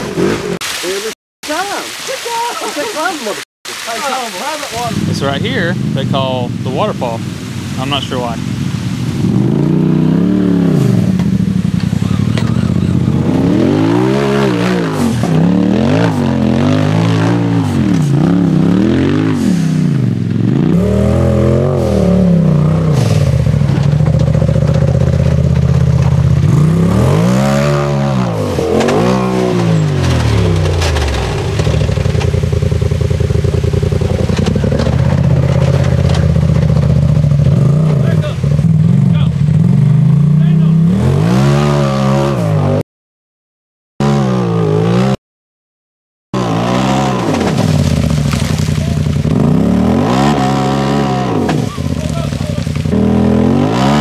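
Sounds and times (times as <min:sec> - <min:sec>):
off-road engines revving: 0:04.0 - 0:42.8, 0:44.0 - 0:45.2, 0:46.4 - 0:54.0.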